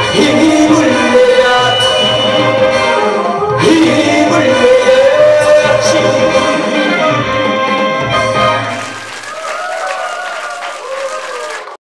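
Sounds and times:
audience applause: 8.6 - 11.8.

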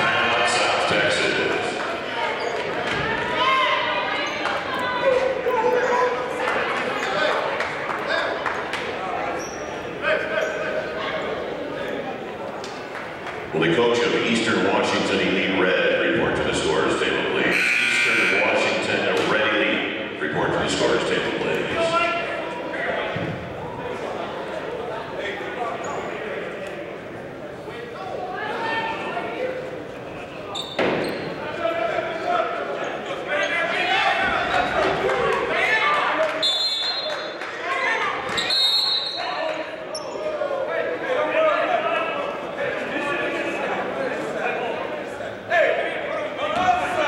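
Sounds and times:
voices echoing in gym: 0.0 - 47.0.

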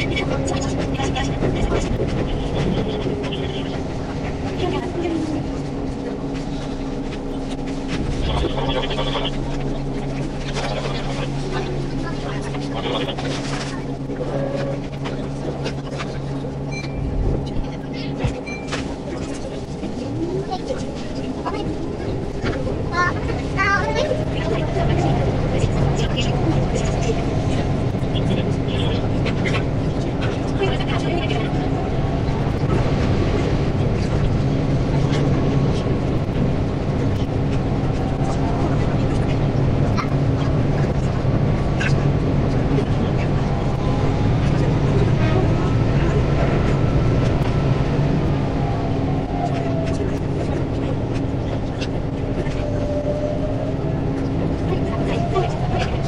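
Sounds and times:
garbled voice-like chatter: 0.0 - 18.4, 19.0 - 56.0
electric train hum rising: 0.0 - 56.0.

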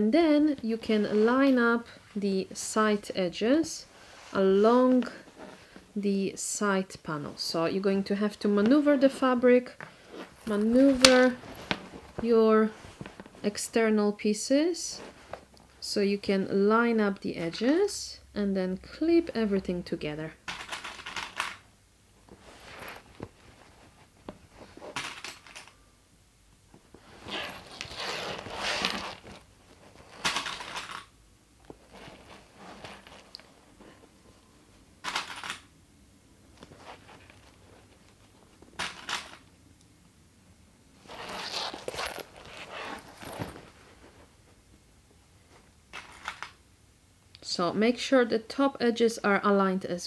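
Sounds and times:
canvas fabric rustling: 0.1 - 2.3, 2.9 - 6.0, 7.1 - 14.1, 14.7 - 15.9, 22.2 - 25.0, 26.7 - 30.2, 31.6 - 34.8, 36.4 - 38.8, 41.0 - 45.8.

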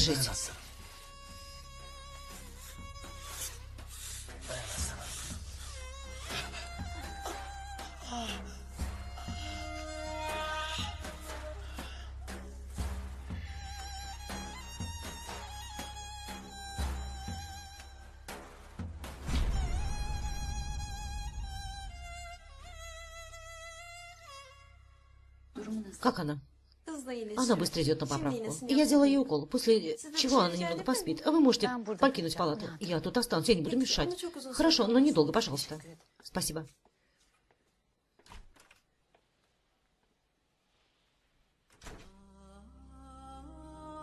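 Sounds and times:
quiet background music: 0.0 - 36.6, 41.9 - 44.0
slow solo violin: 19.5 - 25.0.

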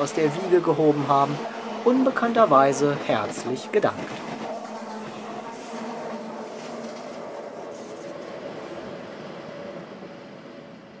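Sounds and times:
train rail running noise: 0.0 - 11.0.

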